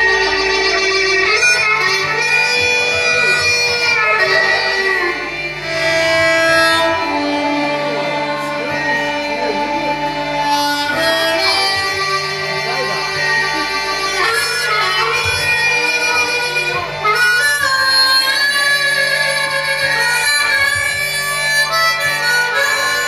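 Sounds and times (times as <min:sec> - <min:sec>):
harmonica with bending notes: 0:00.0 - 0:23.0.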